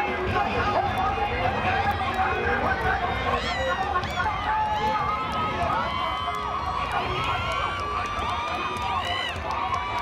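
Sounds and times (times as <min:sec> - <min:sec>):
voices shouting and calling: 0:00.0 - 0:10.0.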